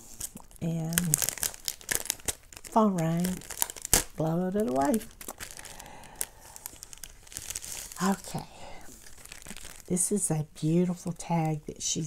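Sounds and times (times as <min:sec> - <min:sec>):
cellophane bag crinkling: 0:00.0 - 0:11.8.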